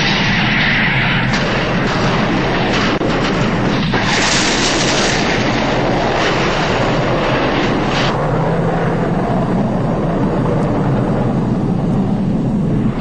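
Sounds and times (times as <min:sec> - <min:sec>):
explosion rumble: 0:00.0 - 0:13.0.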